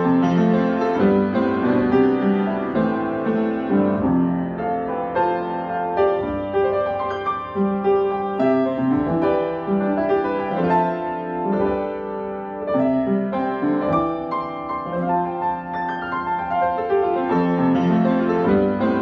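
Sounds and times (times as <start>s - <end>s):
upright piano playing: 0.0s - 19.0s.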